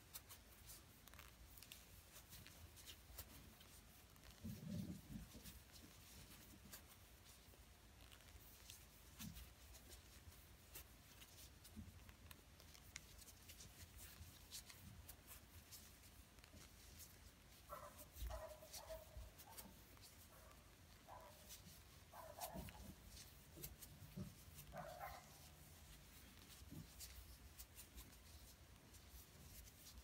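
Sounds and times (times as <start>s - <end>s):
crochet hook rustling yarn: 0.0s - 30.0s.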